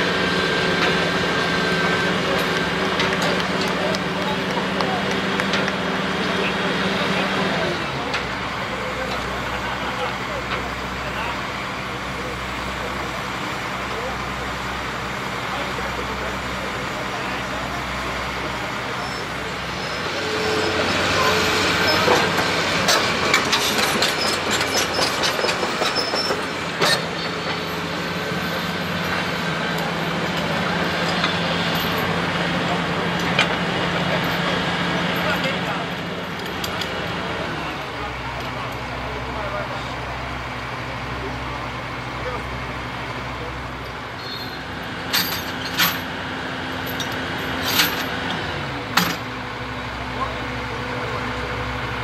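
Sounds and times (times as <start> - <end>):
diesel engine running: 0.0 - 52.0
metallic clanks from steel tracks: 0.5 - 40.0, 40.6 - 52.0.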